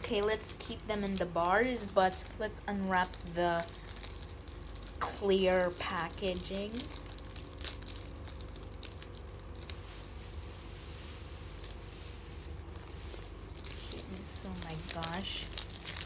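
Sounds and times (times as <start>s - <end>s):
plastic wrapper crinkling and tearing: 0.0s - 16.0s.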